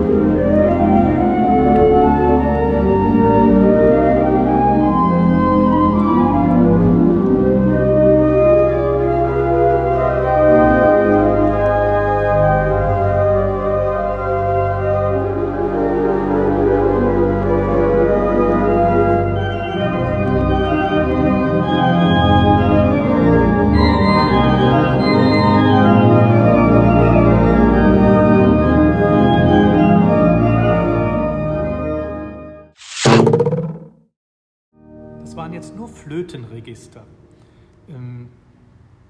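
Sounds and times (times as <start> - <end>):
pipe organ chords: 0.0 - 32.6
falling swoosh: 32.8 - 34.1.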